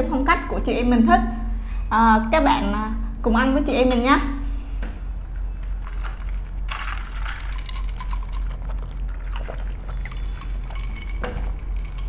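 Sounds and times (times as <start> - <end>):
drink sucked through straw: 8.3 - 11.0.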